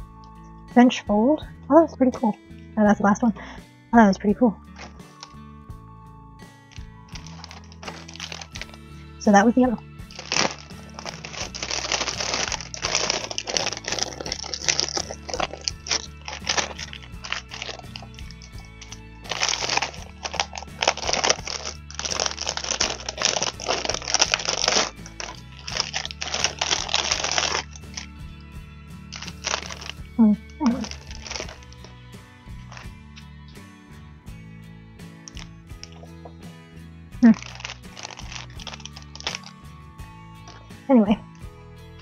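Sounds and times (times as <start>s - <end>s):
background music: 0.0s - 42.0s
plastic bag crinkling: 4.8s - 5.4s, 6.7s - 28.2s, 29.0s - 32.0s, 32.6s - 32.9s, 35.3s - 36.2s, 37.2s - 39.6s, 40.4s - 40.7s.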